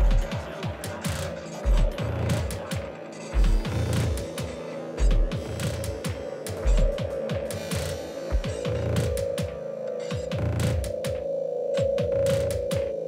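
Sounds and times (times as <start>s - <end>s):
downward-sliding pitched drums: 0.0s - 13.0s.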